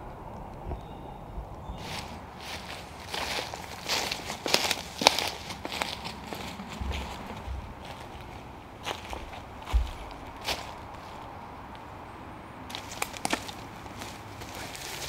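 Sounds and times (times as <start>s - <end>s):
footsteps in dry leaves: 1.7s - 11.4s, 12.7s - 15.0s.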